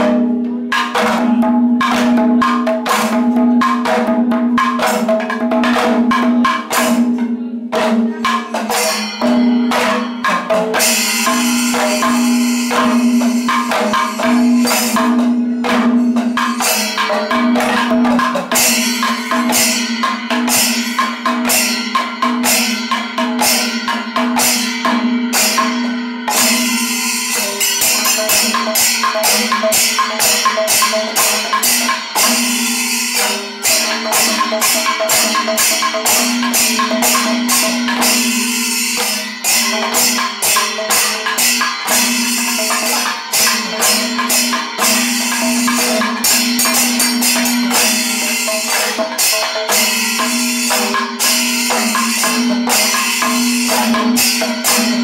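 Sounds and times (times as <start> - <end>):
cymbals clashing: 0.0 - 55.0
hand drums playing fast strokes: 0.0 - 55.0.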